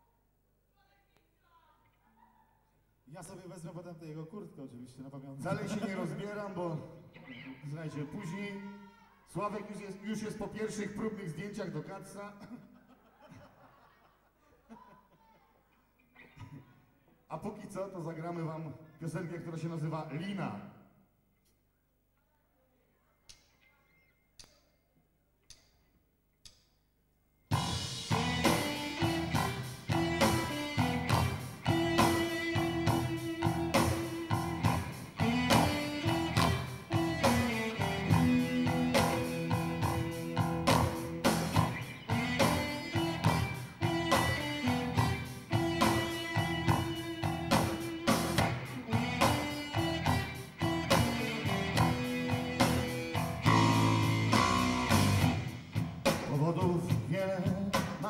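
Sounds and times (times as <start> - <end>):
bass guitar: 27.5 - 58.0
drum kit: 27.5 - 58.0
electric guitars: 27.5 - 58.0
rock band playing: 27.5 - 58.0.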